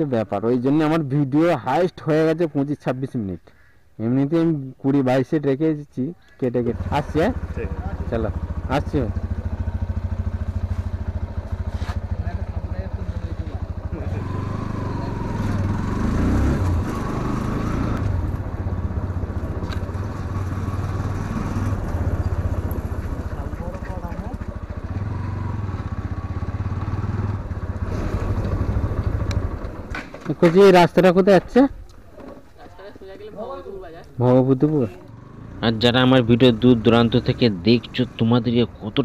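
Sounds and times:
motorcycle engine: 0:06.6 - 0:39.0.

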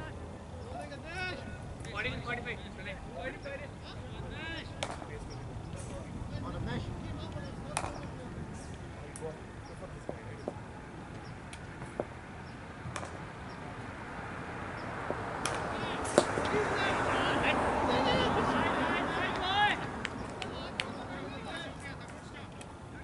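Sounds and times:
players' voices: 0:00.0 - 0:13.9, 0:14.8 - 0:23.0
cricket ball knock: 0:07.7 - 0:08.1.

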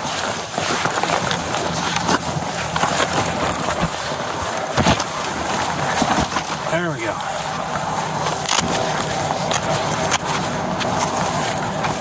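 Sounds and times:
rustling and scuffing handling: 0:00.0 - 0:12.0.

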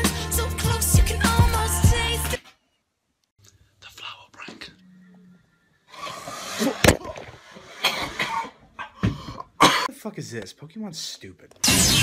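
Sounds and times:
person whispering: 0:03.8 - 0:05.0.

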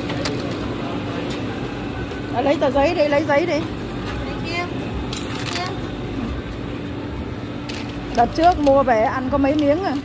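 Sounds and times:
busy indoor background noise: 0:00.0 - 0:10.0
equipment humming: 0:00.0 - 0:10.0.

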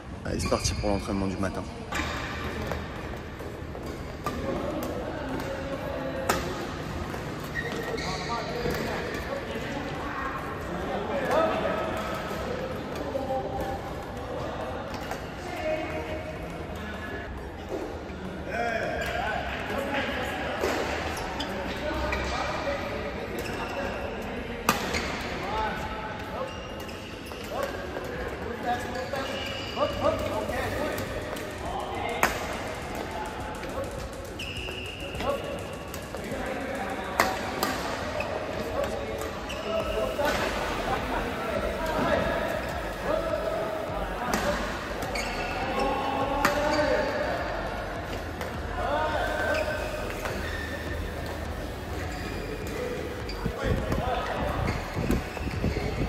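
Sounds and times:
shoes squeaking on court floor: 0:00.3 - 0:56.0.

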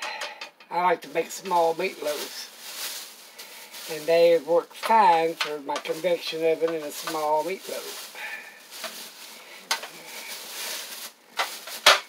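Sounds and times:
plastic bag rustling and crinkling: 0:00.8 - 0:12.0.

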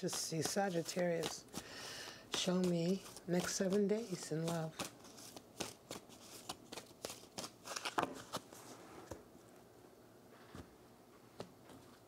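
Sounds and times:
cards being shuffled: 0:00.0 - 0:01.7, 0:02.3 - 0:09.2.

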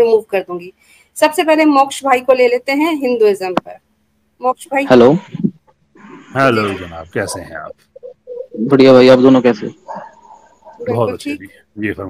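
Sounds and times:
person making wordless sounds: 0:05.0 - 0:08.7.

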